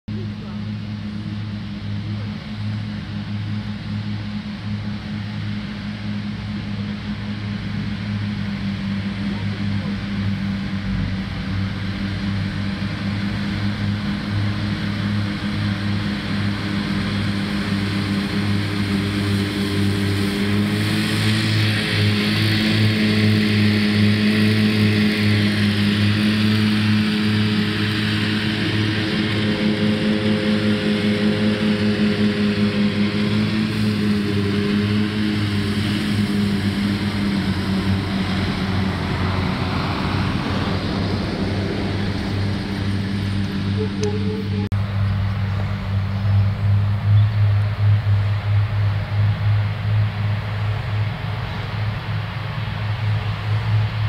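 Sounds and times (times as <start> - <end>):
tractor diesel engine running: 0.1 - 54.0.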